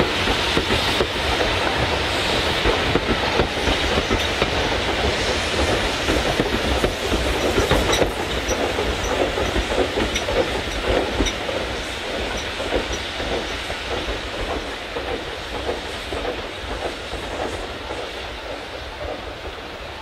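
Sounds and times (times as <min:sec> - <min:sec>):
train wheels clattering over rail joints: 0:00.0 - 0:19.7.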